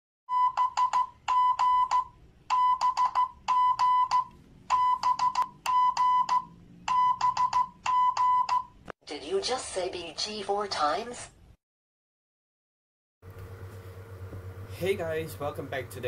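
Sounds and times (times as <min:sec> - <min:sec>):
electronic beeping: 0:00.3 - 0:08.8.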